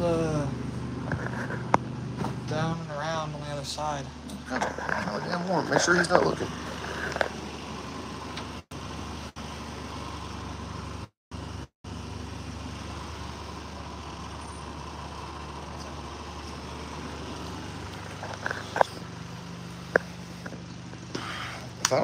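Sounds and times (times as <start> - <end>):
background hum and hiss: 15.4 - 22.0.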